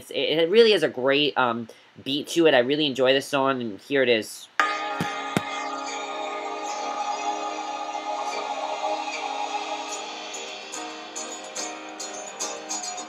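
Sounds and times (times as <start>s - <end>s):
sustained instrumental chords: 4.6s - 13.0s.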